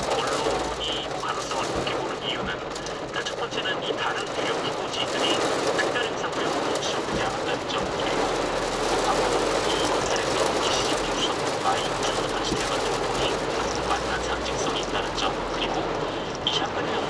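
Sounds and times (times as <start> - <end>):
heavy rain on car roof: 0.0 - 17.0
tyres on wet road: 0.0 - 17.0.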